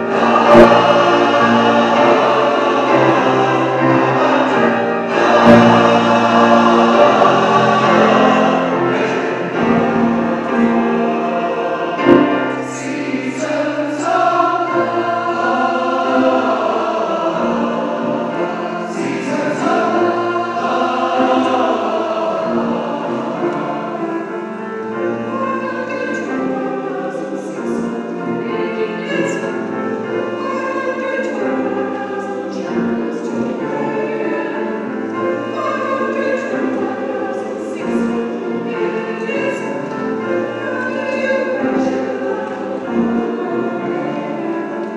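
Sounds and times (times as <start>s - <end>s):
mixed choir singing: 0.0s - 44.9s.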